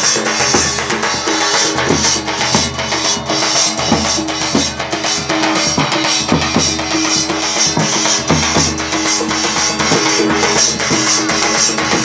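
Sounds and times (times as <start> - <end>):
hand cymbals clashing: 0.0 - 12.0
large drum beaten in lively rhythm: 0.0 - 12.0.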